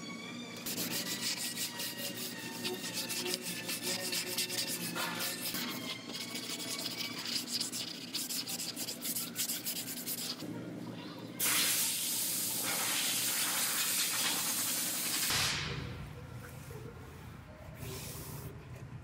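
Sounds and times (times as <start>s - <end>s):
sanding block rasping: 0.6s - 10.4s.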